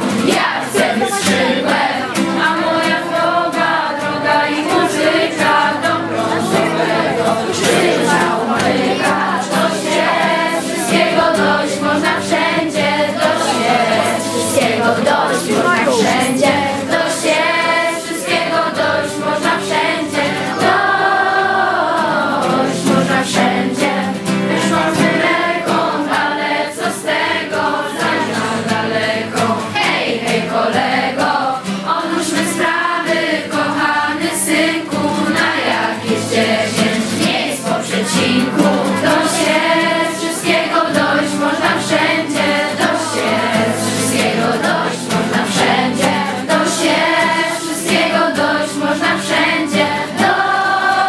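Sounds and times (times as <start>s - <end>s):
acoustic guitar: 0.0s - 51.0s
group of young voices singing: 0.0s - 51.0s.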